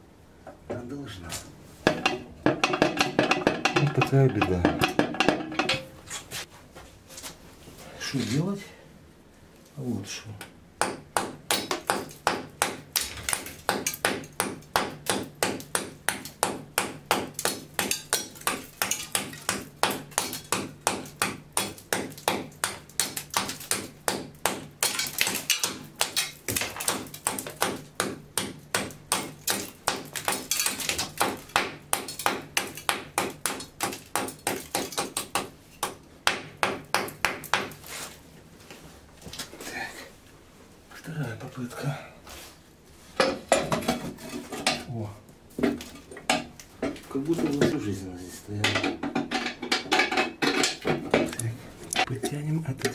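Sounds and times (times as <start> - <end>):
hammer tapping on metal: 1.9 - 5.9.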